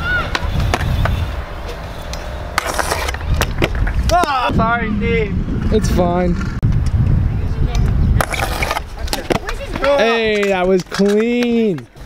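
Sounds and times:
scooter wheels rumbling on concrete: 0:00.0 - 0:12.0
short scrape: 0:00.9 - 0:03.3.

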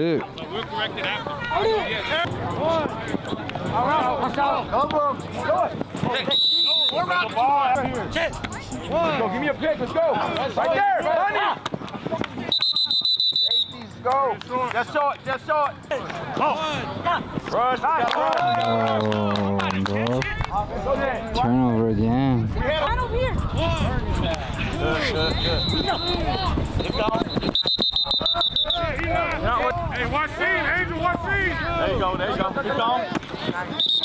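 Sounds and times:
referee's whistle blown: 0:06.2 - 0:07.2, 0:12.5 - 0:13.8, 0:25.2 - 0:29.0, 0:33.8 - 0:34.0.

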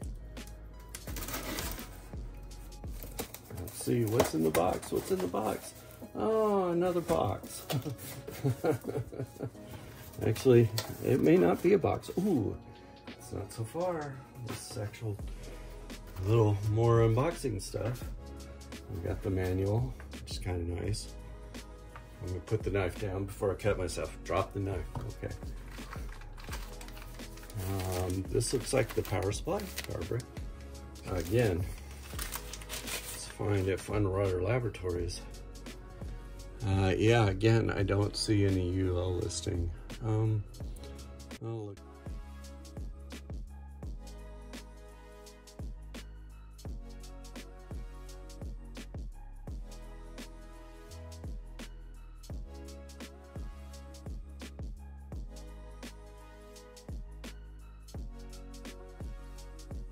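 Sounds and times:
soft background music: 0:00.0 - 0:59.9
packaging rustling and clicking: 0:00.8 - 0:02.0, 0:02.9 - 0:06.0, 0:24.9 - 0:30.3, 0:31.1 - 0:33.4
cardboard scraping: 0:01.0 - 0:02.1, 0:31.0 - 0:33.6.

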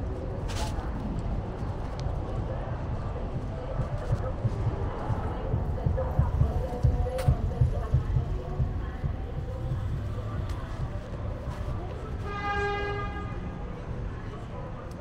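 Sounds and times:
low street rumble: 0:00.0 - 0:15.0
muffled distant voices: 0:00.0 - 0:15.0.

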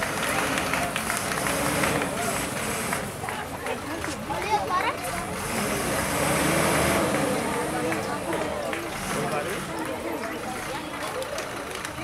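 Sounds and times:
truck diesel engine droning: 0:00.0 - 0:03.5, 0:05.0 - 0:11.5.

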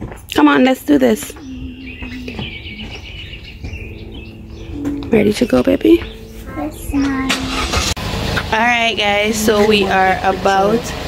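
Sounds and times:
small birds chirping: 0:00.3 - 0:07.8
low hum and rumble: 0:01.0 - 0:11.0.

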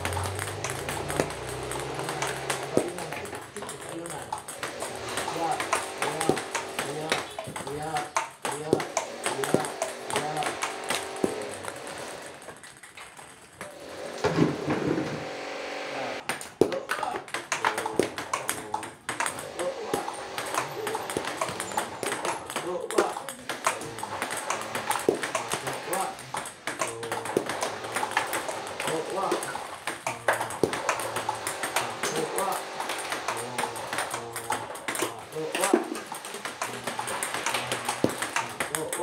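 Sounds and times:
person talking: 0:00.0 - 0:04.4, 0:05.1 - 0:11.6, 0:16.0 - 0:39.0
table tennis balls clicking: 0:00.0 - 0:15.0, 0:16.2 - 0:39.0.

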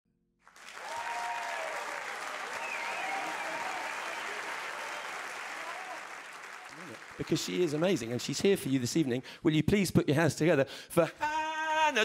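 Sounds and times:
audience applauding: 0:00.4 - 0:09.2.

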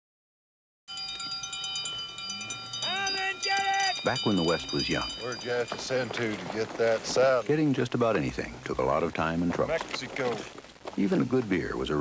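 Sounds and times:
chime-like chord: 0:00.9 - 0:06.6
tinkling high notes: 0:00.9 - 0:07.4.

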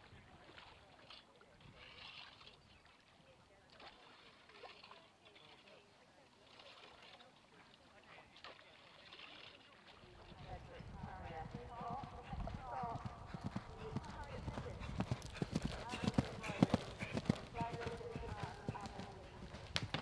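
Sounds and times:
people talking: 0:10.2 - 0:19.8
horse hooves cantering on turf: 0:10.2 - 0:20.0.

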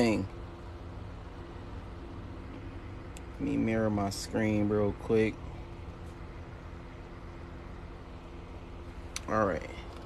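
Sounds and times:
room tone hum and hiss: 0:00.0 - 0:10.0.

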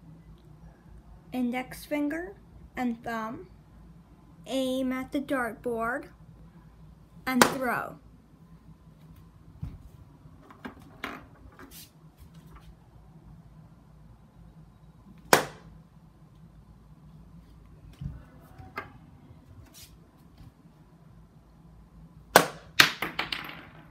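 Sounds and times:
darts striking dartboard: 0:15.3 - 0:15.7, 0:22.4 - 0:23.6.

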